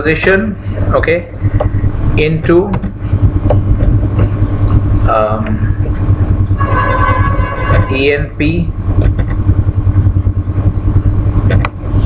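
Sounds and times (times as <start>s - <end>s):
faint hum: 0.0s - 12.0s
steady low rumble: 0.0s - 12.0s.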